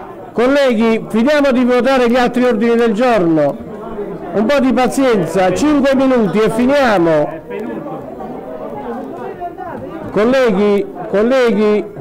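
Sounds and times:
murmur of many people talking: 0.0 - 12.0.

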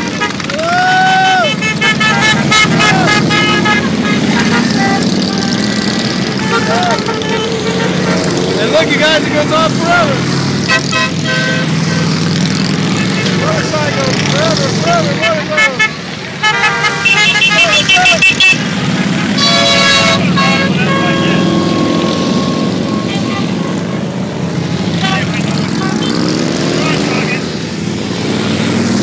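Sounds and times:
engine revving: 0.0 - 16.4, 17.0 - 29.0
horn toots: 0.0 - 24.2, 24.9 - 27.4
motorcycles passing: 0.0 - 29.0
long horn blast: 1.4 - 9.1, 10.6 - 12.3, 15.1 - 18.6, 19.2 - 24.0.

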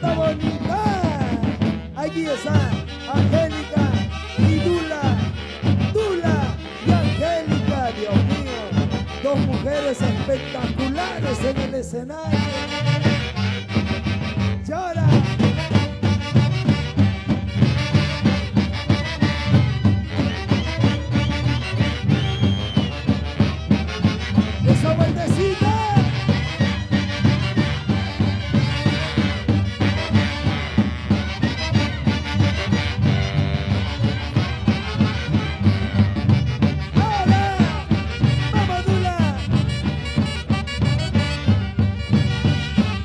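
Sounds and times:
saxophones playing melody: 0.0 - 43.0
steady drum beat: 0.0 - 43.0.

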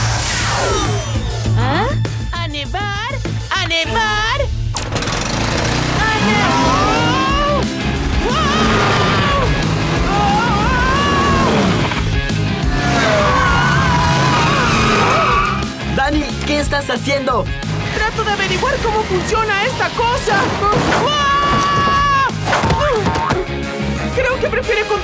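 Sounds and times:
cartoon background music: 0.2 - 4.7, 5.8 - 25.0
sliding wavering vocal cries: 12.6 - 15.6.

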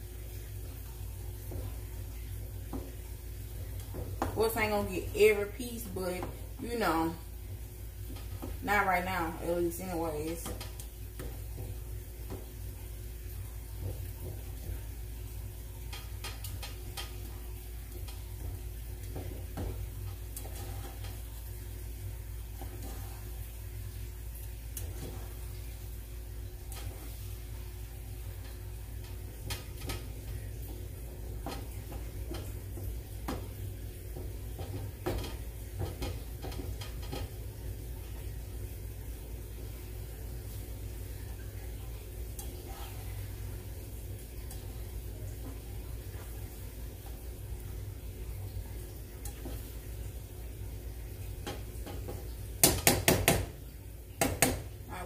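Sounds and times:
light sizzling: 0.0 - 55.0
utensil scraping a skillet: 15.8 - 21.6, 22.4 - 23.6, 42.4 - 43.6.

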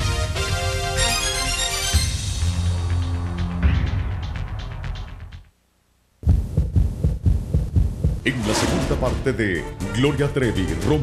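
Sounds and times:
closing theme music: 0.0 - 5.5, 8.2 - 11.0
loud low thumps: 6.2 - 9.1.

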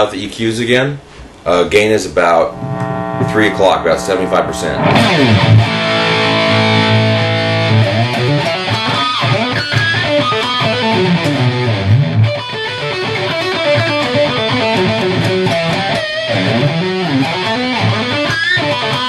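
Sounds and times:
distorted electric guitar: 2.2 - 19.0.

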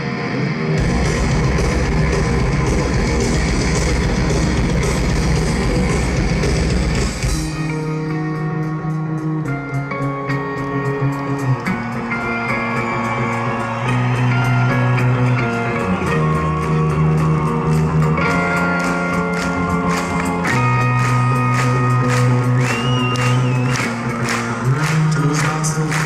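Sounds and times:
electric guitars playing chords: 0.0 - 26.0
steady drum beat: 0.8 - 7.6.

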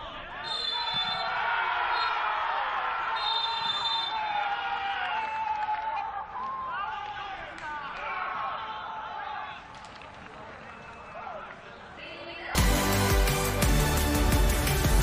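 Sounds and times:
players shouting and cheering: 0.0 - 15.0
referee's whistle blasts: 0.4 - 2.2, 3.1 - 4.3.

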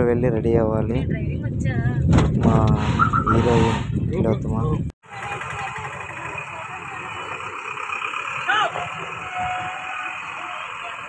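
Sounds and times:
bus engine idling: 5.0 - 11.0.

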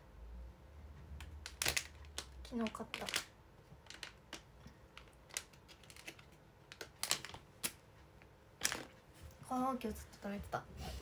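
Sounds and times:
plastic snack package crinkling: 1.2 - 7.8.

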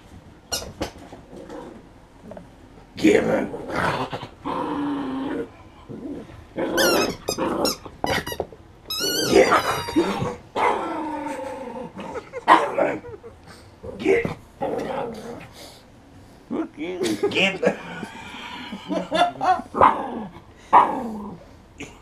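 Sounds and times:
dog growling: 1.3 - 8.2, 9.0 - 13.1, 13.8 - 15.6, 17.6 - 21.9
rubber toy squealing: 6.8 - 10.3.

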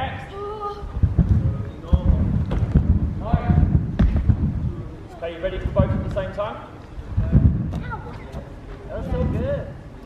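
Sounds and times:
trampoline thumps: 0.9 - 9.6.

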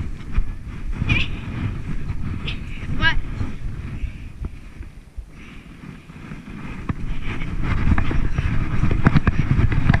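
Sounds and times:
sled scraping over snow: 0.0 - 10.0
sharp bumps and knocks: 6.8 - 10.0.

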